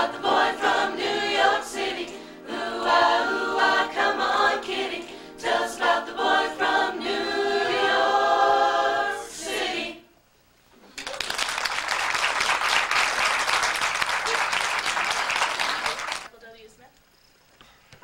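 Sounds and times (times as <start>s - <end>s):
group singing a cappella: 0.0s - 10.2s.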